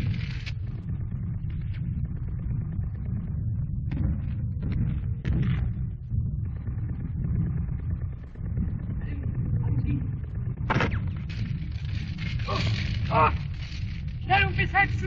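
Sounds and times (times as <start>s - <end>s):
steady low rumble: 0.0s - 15.0s
sharp gunshot: 10.7s - 11.1s.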